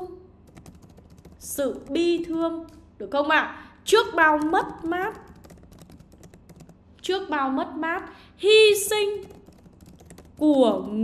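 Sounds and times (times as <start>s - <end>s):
keyboard key clicks: 4.4s - 6.8s.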